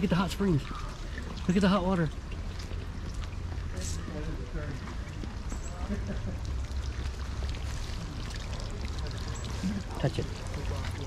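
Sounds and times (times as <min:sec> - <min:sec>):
water running and spilling: 0:00.0 - 0:11.0.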